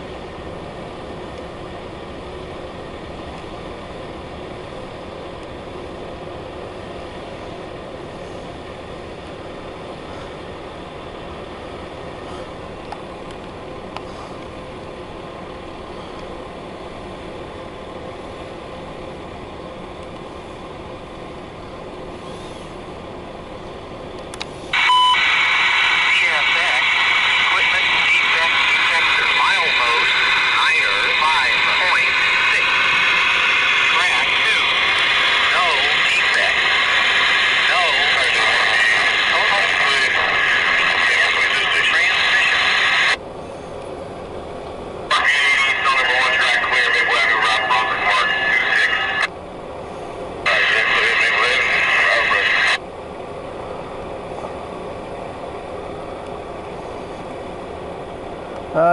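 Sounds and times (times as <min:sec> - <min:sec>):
hissy radio transmissions: 0:00.0 - 0:58.9.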